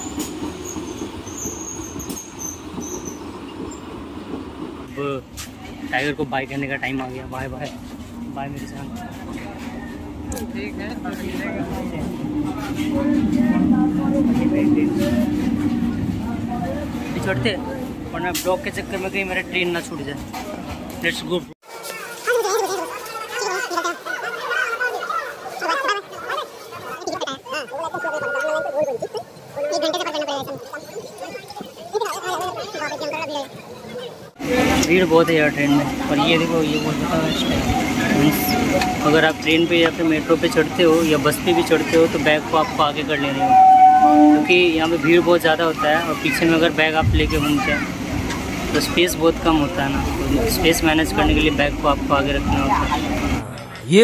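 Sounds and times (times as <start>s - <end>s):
high-pitched wheel squeals: 0.0s - 3.8s, 37.3s - 39.9s, 43.2s - 45.0s
train wheels rumbling on rails: 0.0s - 21.5s, 34.3s - 53.9s
passengers talking at once: 0.0s - 54.0s.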